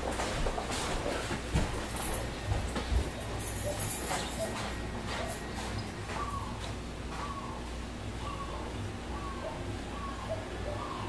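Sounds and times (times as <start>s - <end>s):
animal calls: 3.6s - 11.0s.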